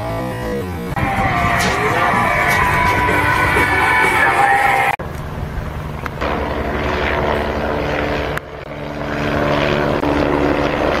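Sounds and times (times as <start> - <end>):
helicopter engine and rotor drone: 0.0 - 11.0.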